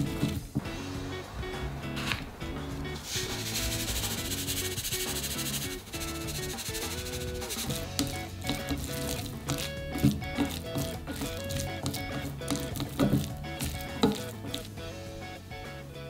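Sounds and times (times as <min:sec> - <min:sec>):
background music: 0:00.0 - 0:16.0
salt pouring soft hiss: 0:03.0 - 0:12.9.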